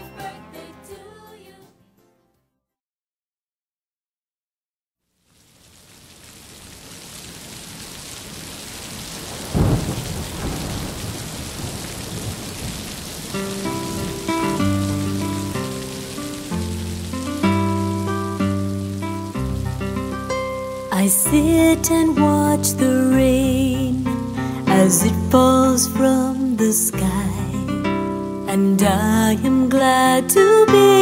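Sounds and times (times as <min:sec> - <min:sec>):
rain: 0:05.0 - 0:31.0
thunderclap: 0:08.3 - 0:16.3
soft melodic instrumental music: 0:13.4 - 0:31.0.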